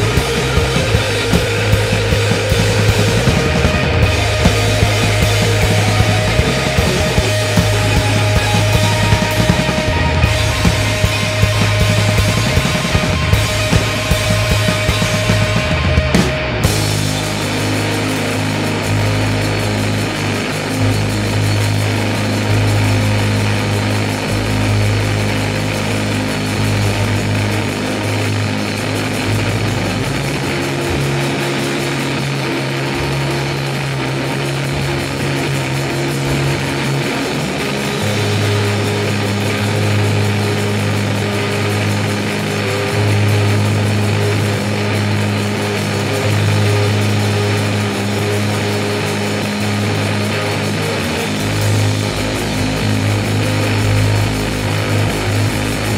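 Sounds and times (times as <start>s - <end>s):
bass guitar: 0.0s - 55.9s
drums: 0.0s - 55.9s
electric guitar: 0.0s - 55.9s.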